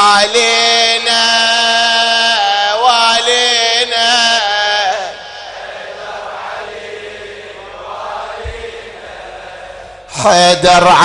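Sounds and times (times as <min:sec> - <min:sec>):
crowd of men chanting: 0:03.2 - 0:11.0
low thump: 0:08.4 - 0:08.9.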